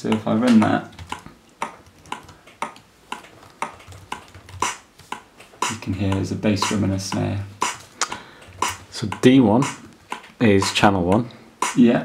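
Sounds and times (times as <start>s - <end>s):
bass drum and snare loop: 0.0s - 12.0s.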